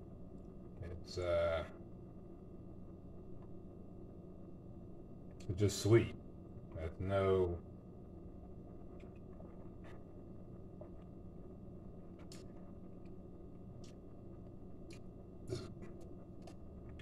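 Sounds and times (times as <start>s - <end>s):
low hum: 0.0s - 17.0s
mouth clicks and smacks: 14.8s - 15.1s.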